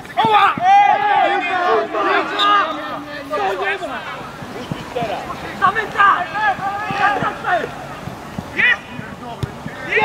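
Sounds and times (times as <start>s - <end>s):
men shouting and cheering: 0.0s - 10.0s.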